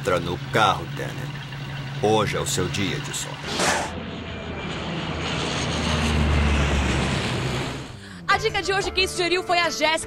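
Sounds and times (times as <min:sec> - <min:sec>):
jet airliner flying by: 0:00.4 - 0:08.3.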